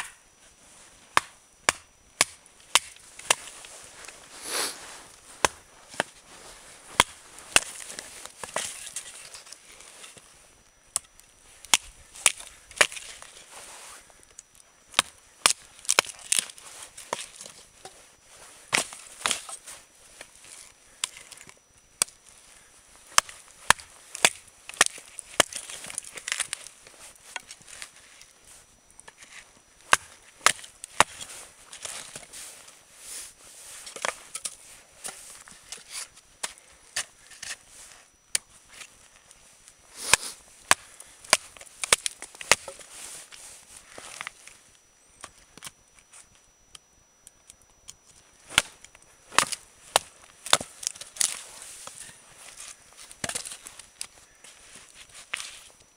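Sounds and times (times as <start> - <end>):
knife chopping firewood: 1.1 - 3.5, 6.9 - 9.3, 10.9 - 13.3, 14.9 - 18.0, 18.7 - 19.6, 23.1 - 26.7, 29.1 - 32.3, 40.0 - 42.9, 48.5 - 54.4.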